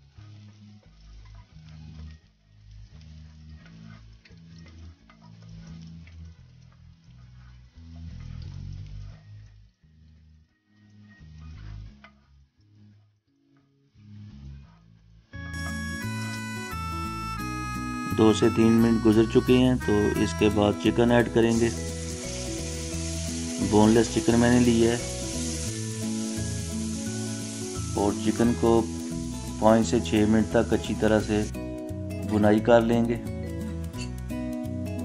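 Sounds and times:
garlic sizzling in oil: 0:00.0 - 0:09.7, 0:15.5 - 0:35.0
guitar music: 0:15.4 - 0:35.0.

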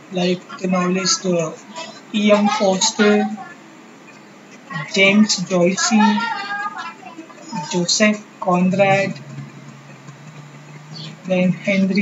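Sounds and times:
person speaking: 0:00.0 - 0:03.6, 0:04.7 - 0:12.0
low hum with faint hiss: 0:00.0 - 0:12.0.

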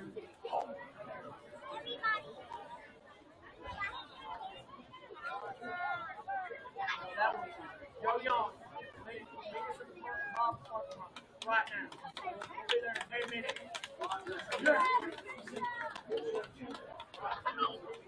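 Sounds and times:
people talking: 0:00.0 - 0:18.0.

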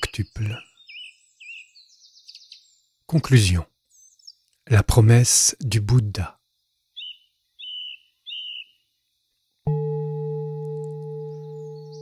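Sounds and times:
bird chirp: 0:00.0 - 0:04.6, 0:06.6 - 0:12.0
singing bowl ringing: 0:09.7 - 0:12.0.

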